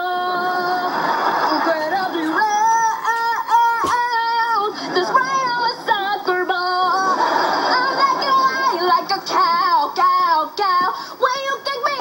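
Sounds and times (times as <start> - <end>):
girl singing in a high voice: 0.0 - 0.9, 1.6 - 12.0.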